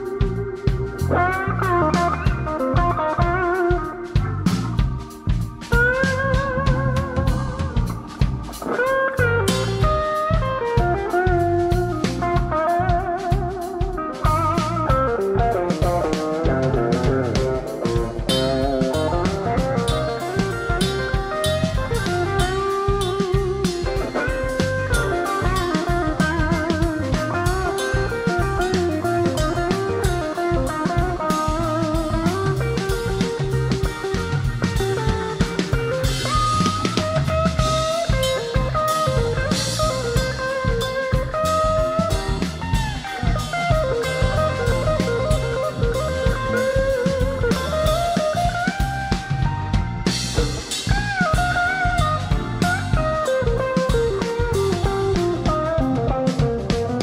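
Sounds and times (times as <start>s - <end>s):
blues band playing: 0.0s - 57.0s
lead electric guitar: 0.0s - 57.0s.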